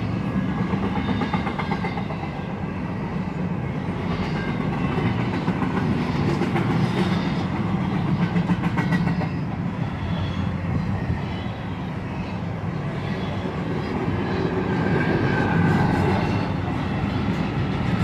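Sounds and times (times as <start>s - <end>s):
freight train rumbling past: 0.0s - 18.0s.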